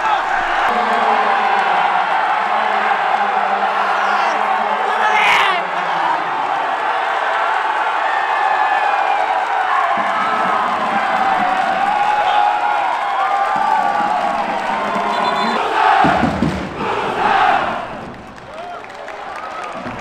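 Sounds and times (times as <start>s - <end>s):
football crowd cheering and shouting: 0.0s - 20.0s.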